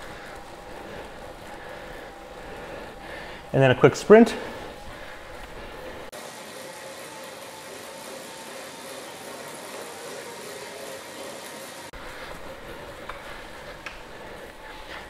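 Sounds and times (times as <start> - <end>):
bike chain whirring: 0.0 - 15.0.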